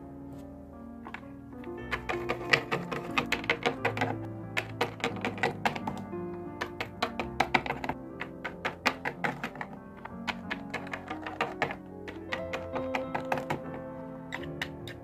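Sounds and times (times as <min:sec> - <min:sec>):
background music: 0:00.0 - 0:15.0
plastic figurines tapping on surface: 0:01.9 - 0:06.0, 0:06.6 - 0:15.0.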